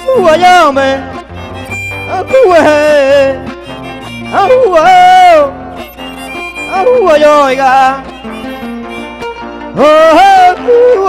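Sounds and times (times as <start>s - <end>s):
strummed acoustic guitar: 0.0s - 11.0s
violin playing sliding melody: 0.0s - 11.0s.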